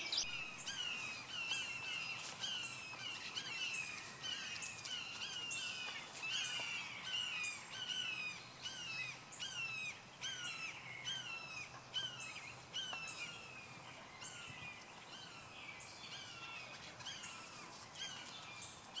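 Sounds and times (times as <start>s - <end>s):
bird calling: 0.0s - 19.0s.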